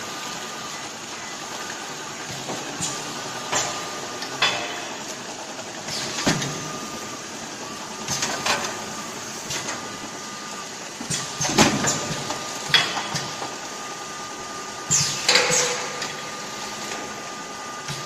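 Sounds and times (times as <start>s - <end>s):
machine humming: 0.0s - 18.0s
machine clacks: 2.3s - 6.6s, 14.9s - 16.2s
pneumatic hisses: 14.9s - 15.9s.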